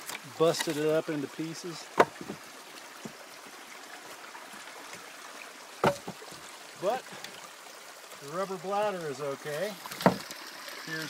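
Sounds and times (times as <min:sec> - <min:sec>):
spring water trickling: 0:00.0 - 0:11.0.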